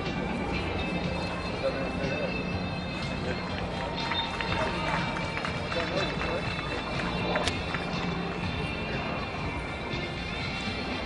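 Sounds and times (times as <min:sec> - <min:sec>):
voices: 0:00.0 - 0:10.1
music: 0:00.0 - 0:11.0.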